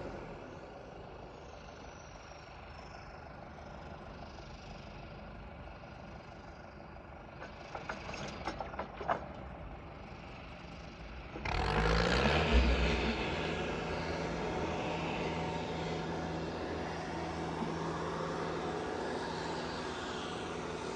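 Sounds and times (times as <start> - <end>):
diesel engine revving: 11.0 - 20.9.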